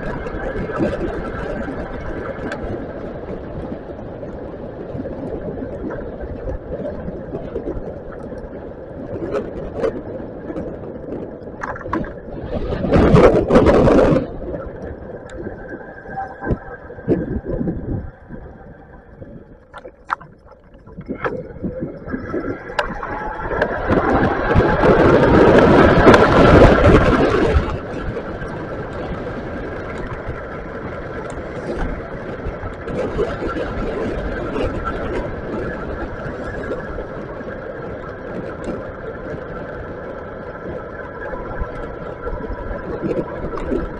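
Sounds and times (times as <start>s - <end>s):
wind on microphone: 0.0s - 43.9s.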